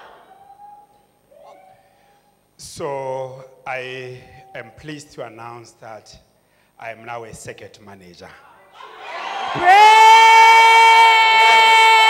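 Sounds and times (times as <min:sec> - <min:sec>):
faint voices in large room: 0:00.0 - 0:09.7.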